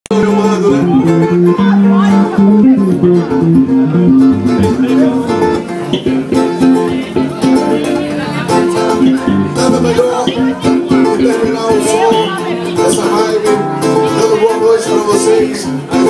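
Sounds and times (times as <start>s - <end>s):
bass line: 0.1s - 14.7s
acoustic guitar playing: 0.1s - 16.0s.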